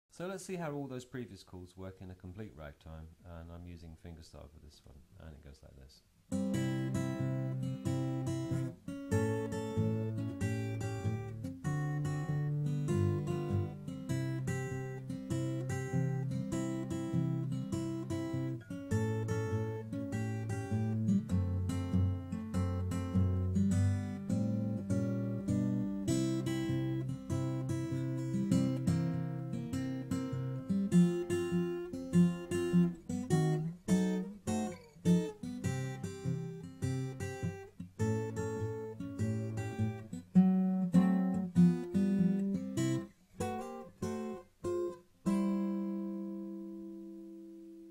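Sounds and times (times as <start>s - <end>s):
fingerstyle acoustic guitar: 6.3s - 47.9s.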